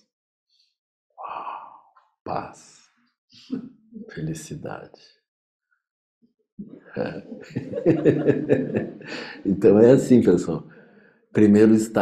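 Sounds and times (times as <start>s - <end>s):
man sighing: 9.0s - 9.5s.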